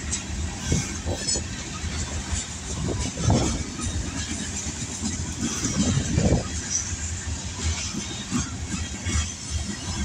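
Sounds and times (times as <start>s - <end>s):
freight train wheels rumbling on rail: 0.0s - 10.0s
train wheels clattering: 0.0s - 10.0s.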